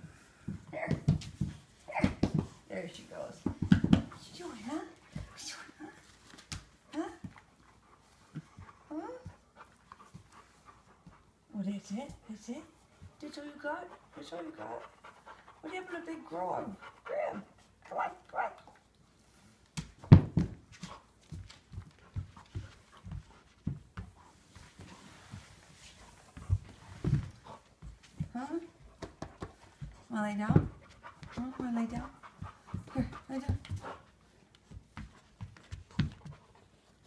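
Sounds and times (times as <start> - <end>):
dog playing tug with rope toy: 19.7 - 37.0.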